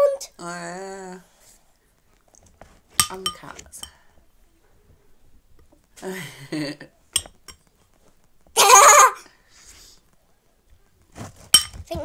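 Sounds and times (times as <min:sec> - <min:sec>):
spoon clinking metal bowl: 0:03.0 - 0:04.0, 0:07.2 - 0:07.6, 0:11.5 - 0:11.8
girl squealing: 0:08.6 - 0:09.3.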